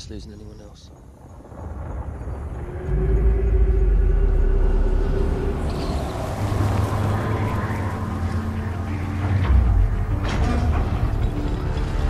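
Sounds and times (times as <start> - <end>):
held groaning tone: 2.6 - 11.5
stone doors grinding shut: 9.7 - 12.0.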